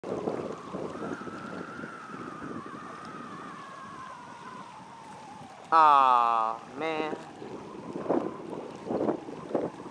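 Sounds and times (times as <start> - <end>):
wind buffeting microphone: 0.0 - 9.9
thin wavering whine: 0.1 - 9.9.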